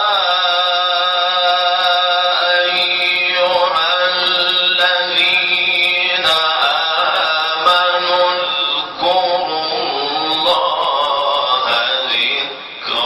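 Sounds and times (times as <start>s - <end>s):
man chanting melodically: 0.0s - 13.0s.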